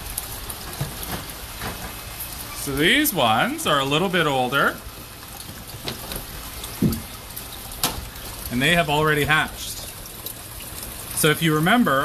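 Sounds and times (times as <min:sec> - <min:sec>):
water rushing steadily: 0:00.0 - 0:12.0.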